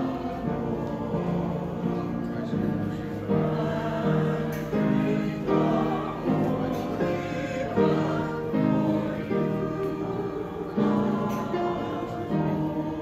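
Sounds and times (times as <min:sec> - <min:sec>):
voices singing together: 0:00.0 - 0:13.0.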